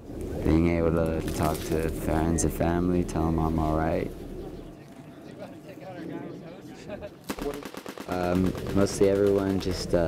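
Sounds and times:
machine gun firing: 7.3 - 10.0.

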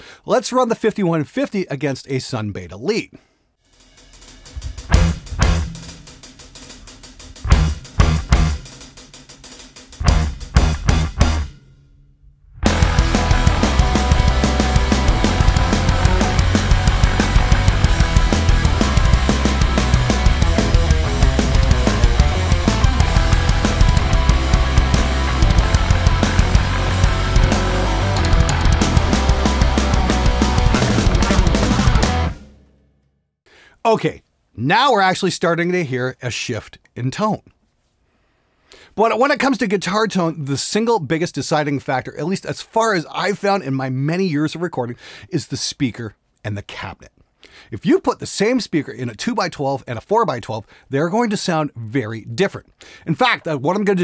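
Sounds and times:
drums: 3.6 - 11.8, 12.6 - 32.8
metal band playing: 3.7 - 11.8, 12.6 - 32.7
distorted electric guitar: 4.1 - 8.8, 10.0 - 11.6, 12.6 - 32.6.

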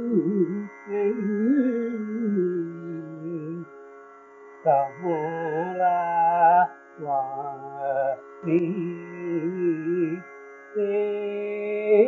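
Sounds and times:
man singing: 0.0 - 3.6, 4.7 - 10.2, 10.8 - 12.0.

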